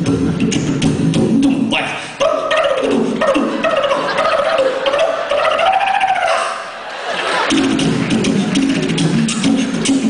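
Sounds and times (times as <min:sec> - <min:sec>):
quick beatboxing clicks: 0:00.0 - 0:04.0, 0:07.5 - 0:10.0
beatboxing held wavering tone: 0:00.0 - 0:06.5, 0:07.5 - 0:10.0.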